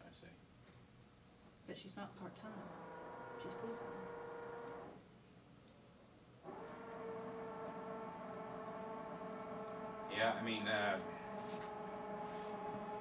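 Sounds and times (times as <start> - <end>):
faint pitched hum: 0.0 - 13.0.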